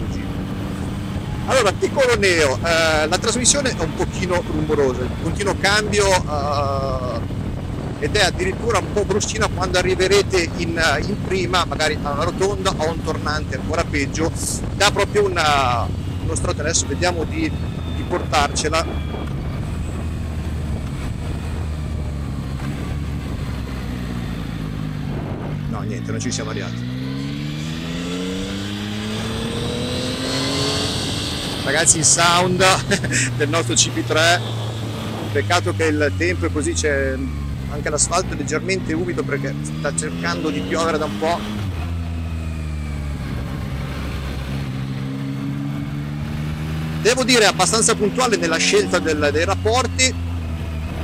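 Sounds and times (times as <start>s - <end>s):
wind rush: 0.0s - 36.5s, 40.6s - 47.0s
motorcycle engine at low revs: 0.0s - 51.0s.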